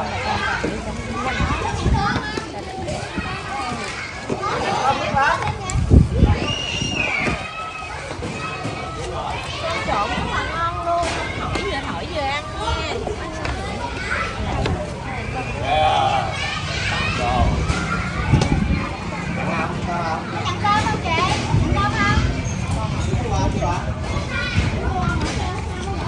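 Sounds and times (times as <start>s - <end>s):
people chattering: 0.0s - 26.0s.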